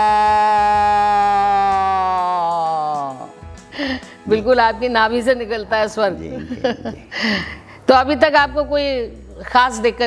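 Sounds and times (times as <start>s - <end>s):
man's loud devotional cry: 0.0s - 3.3s.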